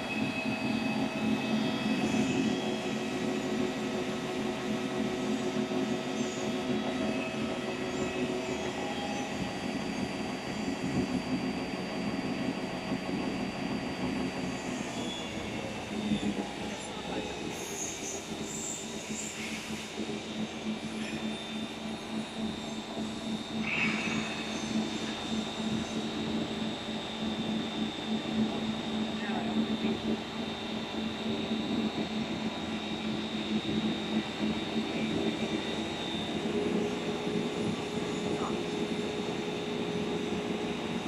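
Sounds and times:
machine hums and whines: 0.0s - 41.0s
printing machine drone: 0.0s - 41.0s.

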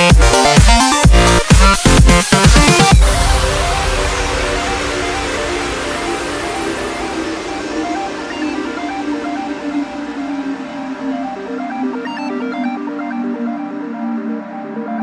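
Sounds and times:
electronic dance music: 0.0s - 15.0s.

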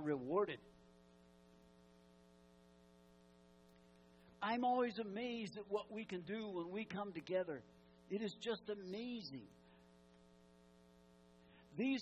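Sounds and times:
man speaking: 0.0s - 0.7s, 4.4s - 9.6s, 11.8s - 12.0s
faint mains hum: 0.0s - 12.0s.

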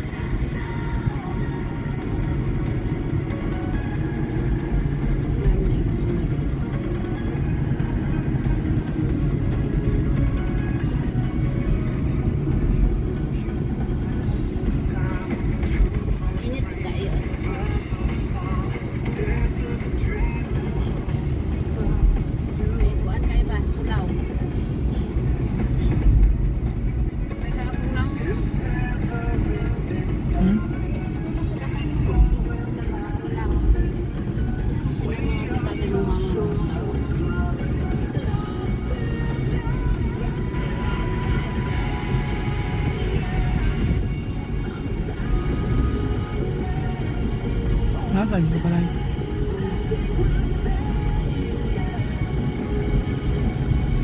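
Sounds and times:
low road rumble in car: 0.0s - 54.0s
music playing: 0.0s - 54.0s.

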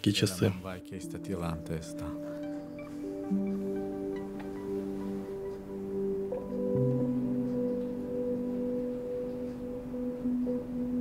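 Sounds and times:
soft music of held ringing notes: 0.0s - 11.0s.

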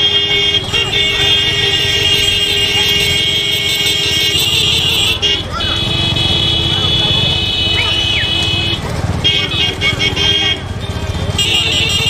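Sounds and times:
high-pitched horn tone: 0.0s - 12.0s
motorcycle engines running: 0.0s - 12.0s.

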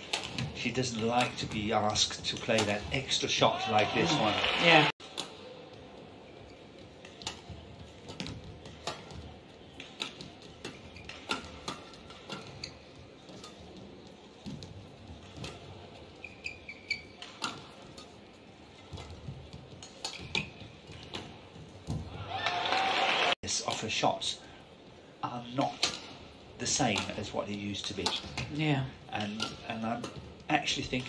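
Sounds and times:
rackets striking shuttlecock: 0.0s - 2.9s, 7.0s - 13.8s, 26.8s - 28.6s, 29.2s - 30.3s
arena background noise: 0.0s - 31.0s.

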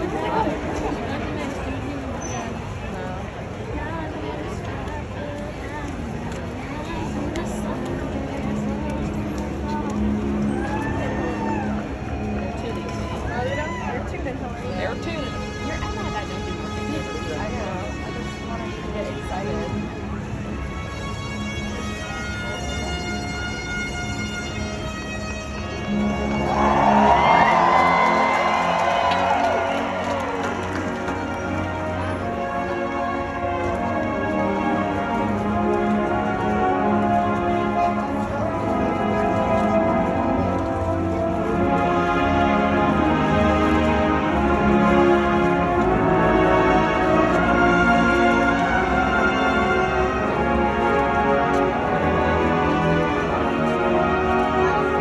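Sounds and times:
crowd cheering and shouting: 10.4s - 14.2s, 26.2s - 31.2s
marching band playing: 20.5s - 55.0s.

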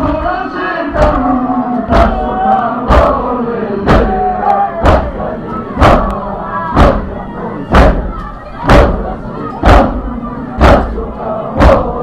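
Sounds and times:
chest beating thumps: 1.9s - 2.3s, 2.9s - 6.2s, 6.8s - 12.0s.

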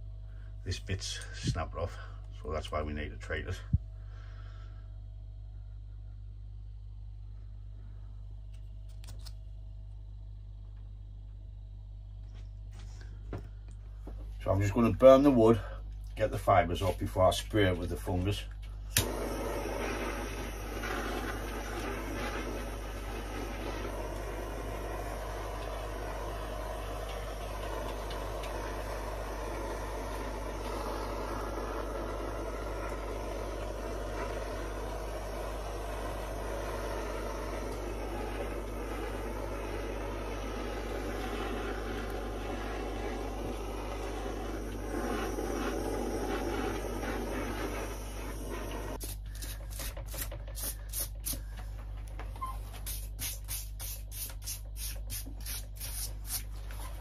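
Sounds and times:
gas blowtorch hissing: 12.8s - 57.0s.

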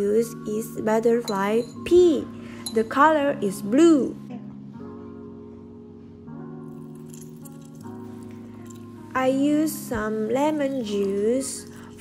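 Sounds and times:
soft held chords music: 0.0s - 12.0s.

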